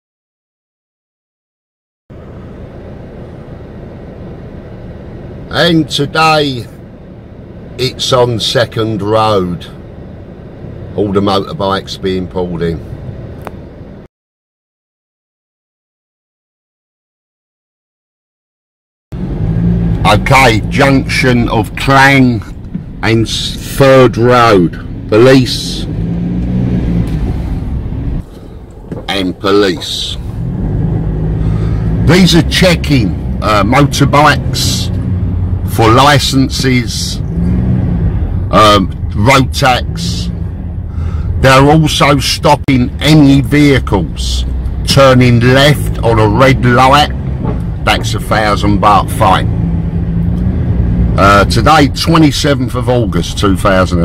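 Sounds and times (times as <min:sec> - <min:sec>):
car engine rumble: 0:02.1 - 0:14.1, 0:19.1 - 0:54.0
road noise inside car: 0:02.1 - 0:14.1, 0:19.1 - 0:54.0.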